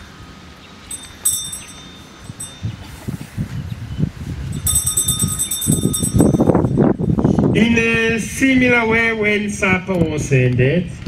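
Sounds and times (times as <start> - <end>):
low rumbling noise: 0.0 - 11.0
altar bells jingling: 0.9 - 3.0, 4.5 - 7.2.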